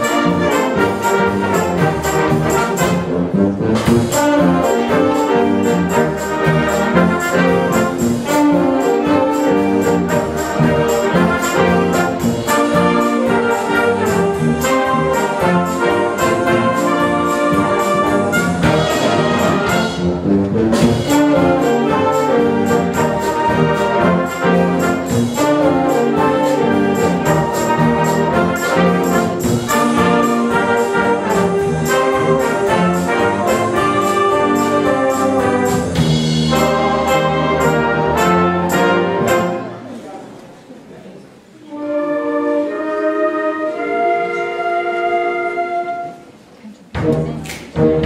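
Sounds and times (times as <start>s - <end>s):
wind band playing rock and roll: 0.0s - 39.9s, 41.7s - 48.0s.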